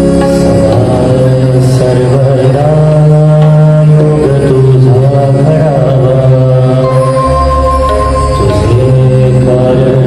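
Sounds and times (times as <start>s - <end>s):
harmonium drone: 0.0s - 10.0s
person chanting devotional song: 0.0s - 10.0s.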